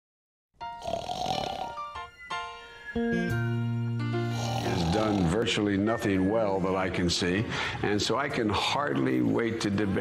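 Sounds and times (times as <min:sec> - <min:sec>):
intro music: 0:00.7 - 0:06.8.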